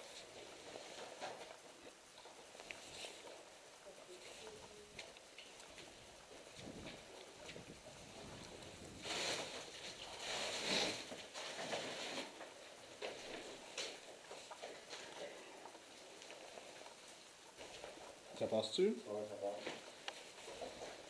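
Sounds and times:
scraping and crunching: 0.0 - 15.4.

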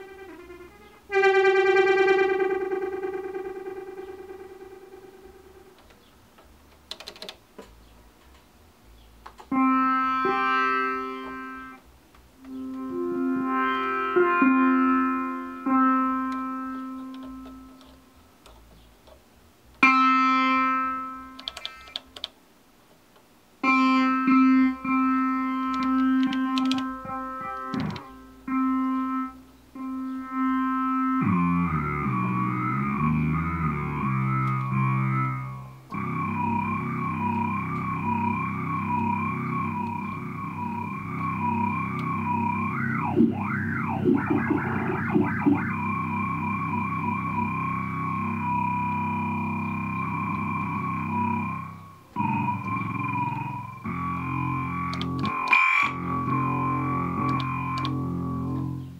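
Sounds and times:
wobbling synthesizer tone: 0.0 - 5.8, 12.4 - 17.9, 23.6 - 58.9
low bass notes: 0.0 - 6.0, 9.0 - 19.1, 23.6 - 58.9
synthesizer notes: 0.0 - 6.1, 9.5 - 11.8, 12.4 - 18.2, 19.8 - 22.2, 23.6 - 58.9.

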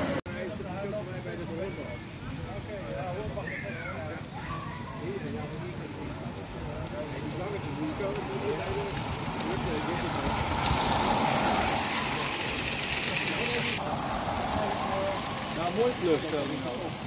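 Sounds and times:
model steam locomotive hissing: 0.0 - 17.0
people talking: 0.0 - 17.0.

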